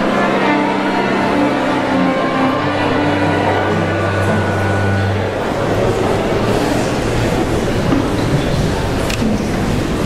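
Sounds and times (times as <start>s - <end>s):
string orchestra playing: 0.0s - 7.8s.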